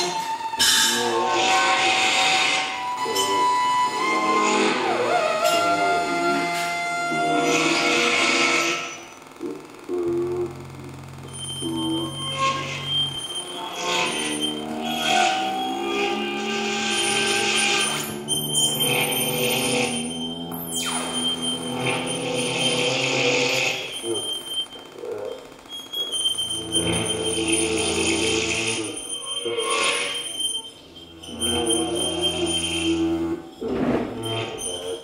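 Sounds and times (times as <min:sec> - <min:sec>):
shifting electronic tones: 0:02.6 - 0:35.0.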